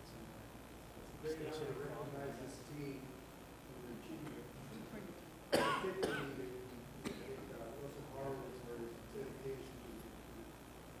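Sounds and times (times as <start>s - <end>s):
loud cough: 5.5s - 6.4s, 7.0s - 7.4s.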